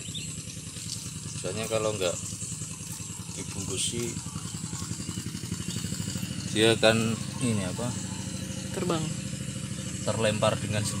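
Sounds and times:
small engine puttering: 0.0 - 11.0.

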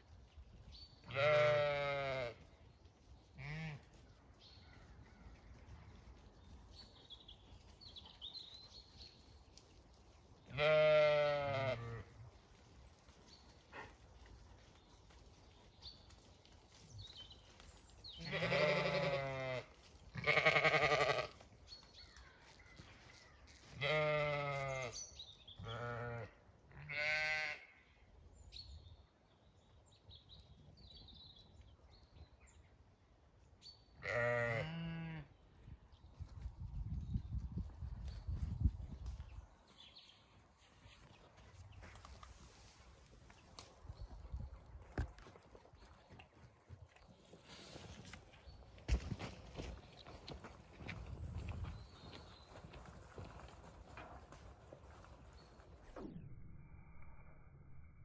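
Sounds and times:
sheep bleating: 1.1 - 2.4, 10.5 - 12.1, 18.2 - 21.4, 23.8 - 25.0, 25.6 - 27.8, 34.0 - 35.3
low rumbling noise: 55.8 - 58.0.

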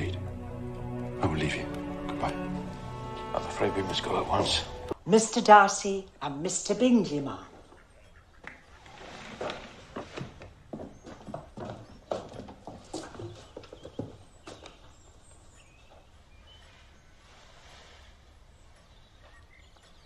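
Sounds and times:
horse hooves clip-clopping: 7.5 - 20.0.

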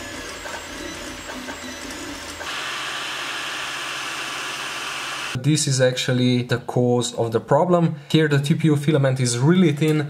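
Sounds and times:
stepper motors whining: 0.0 - 5.4.

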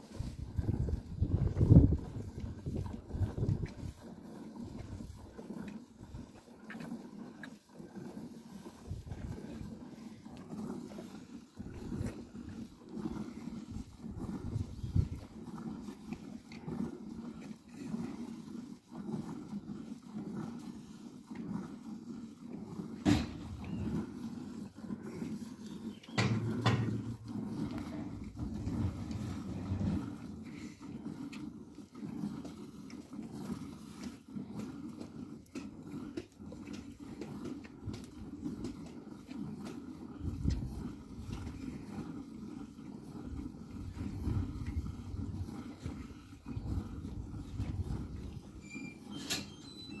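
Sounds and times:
milk squirting into a bucket: 0.1 - 49.9.

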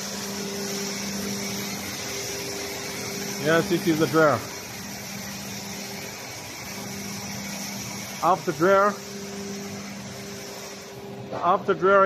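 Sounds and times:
constant hiss: 0.0 - 12.0
factory machinery hum: 0.0 - 12.0.

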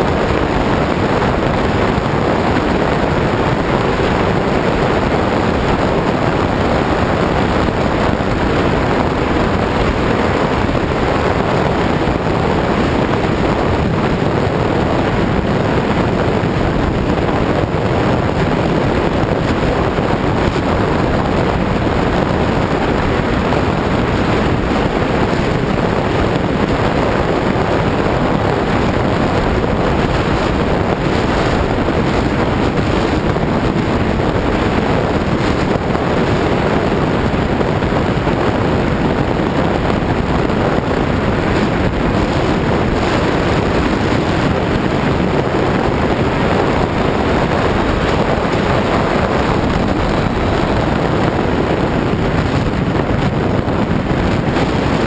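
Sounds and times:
electric ducted fans running: 0.0 - 55.0
loud rush of airflow: 0.0 - 55.0.

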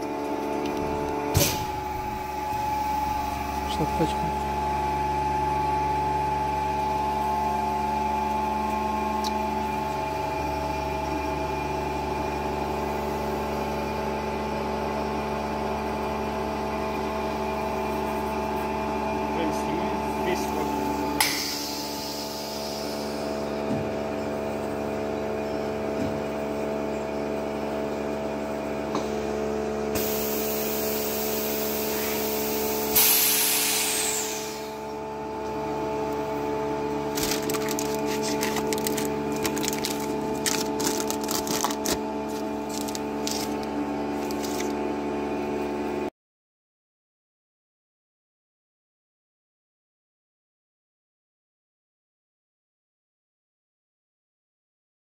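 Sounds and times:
vacuum pump humming: 0.0 - 46.1
air hissing: 21.2 - 23.4, 30.0 - 34.8.

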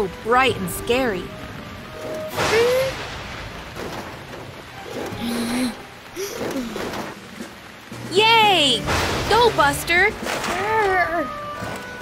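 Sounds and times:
background music: 0.0 - 12.0
rain hissing: 0.0 - 12.0.

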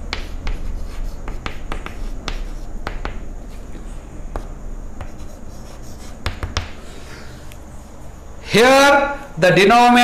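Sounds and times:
chalk tapping on board: 0.1 - 3.7, 4.3 - 6.8
chalk scratching on blackboard: 0.1 - 6.8.

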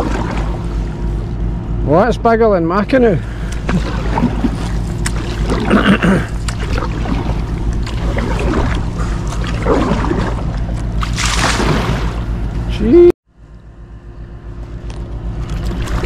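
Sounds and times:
water splash: 0.0 - 0.6, 3.6 - 12.3
steady low hum: 0.0 - 16.0
paddle strokes through water: 3.4 - 12.2.

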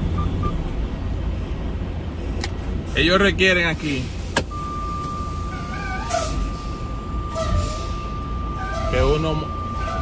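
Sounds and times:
steady electronic warning tone: 4.5 - 10.0.

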